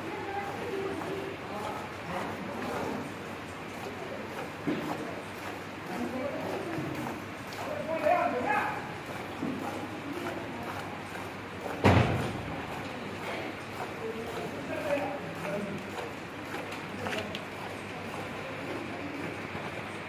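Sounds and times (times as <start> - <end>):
loud thud: 11.8 - 12.4.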